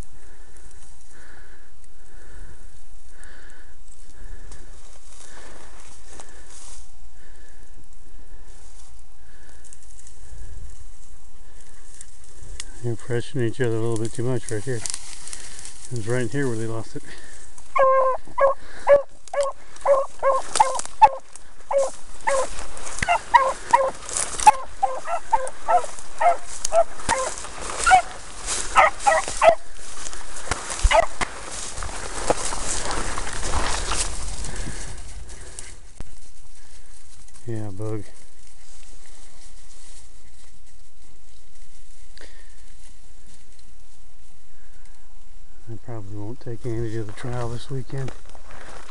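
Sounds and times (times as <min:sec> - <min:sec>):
brush crackling against microphone: 0:11.6 - 0:36.5
dog barking in short yelps: 0:24.5 - 0:27.3, 0:28.8 - 0:29.6.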